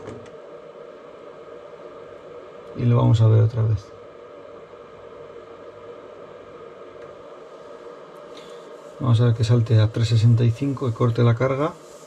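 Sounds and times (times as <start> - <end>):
power supply humming: 0.0 - 12.0.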